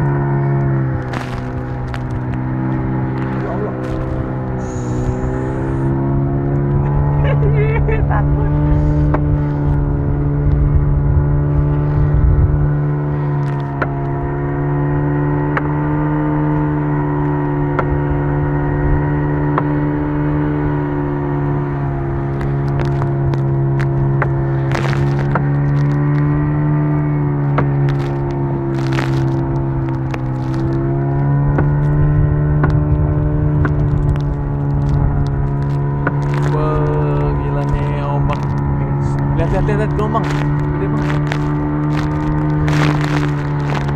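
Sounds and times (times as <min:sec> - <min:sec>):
boat motor droning: 0:00.0 - 0:43.9
sharp knocks and cracks: 0:01.0 - 0:04.6, 0:22.3 - 0:26.5, 0:27.5 - 0:36.6.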